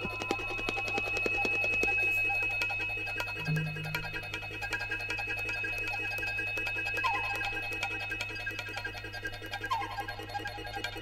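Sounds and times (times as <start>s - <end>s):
short struck notes: 3.5s - 4.4s
high electronic tone: 3.5s - 4.6s
low hum: 3.5s - 4.6s.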